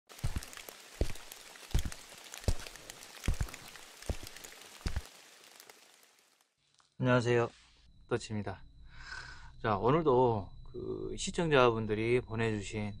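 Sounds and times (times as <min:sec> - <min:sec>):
steady crackle: 0:00.1 - 0:07.0.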